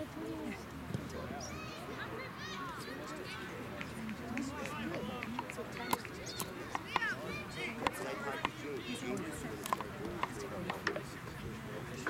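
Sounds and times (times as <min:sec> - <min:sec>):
distant shouting and calling: 0:01.0 - 0:09.1.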